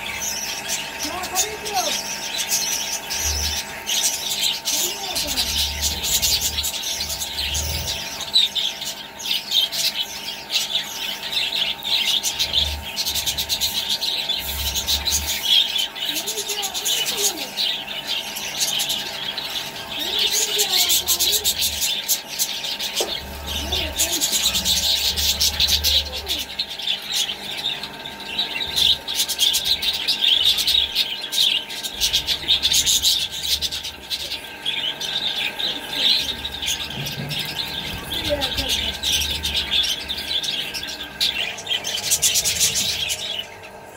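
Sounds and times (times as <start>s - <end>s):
budgerigars chirping: 0.0s - 43.9s.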